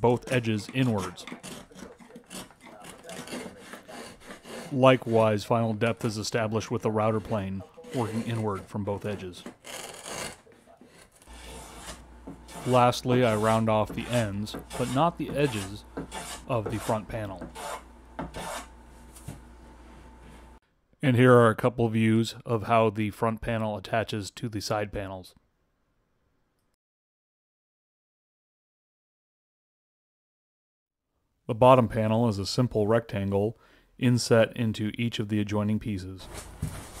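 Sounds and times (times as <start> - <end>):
chisel scraping wood: 0.0 - 18.7
hand file rasping on wood: 0.0 - 18.7.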